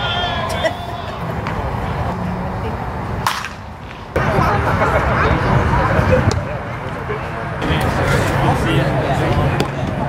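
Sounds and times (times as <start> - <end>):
background voices chattering: 0.0 - 10.0
baseball bat cracking ball: 3.2 - 4.1.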